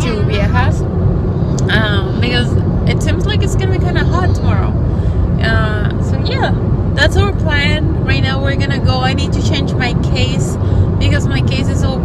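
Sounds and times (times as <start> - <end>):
woman talking: 0.0 - 0.8, 1.6 - 4.8, 5.4 - 12.0
car engine rumble and road noise: 0.0 - 12.0.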